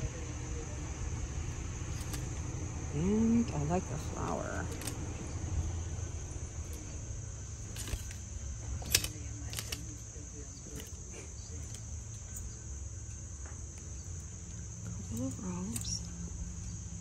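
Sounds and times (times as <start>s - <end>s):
insects chirring: 0.0s - 17.0s.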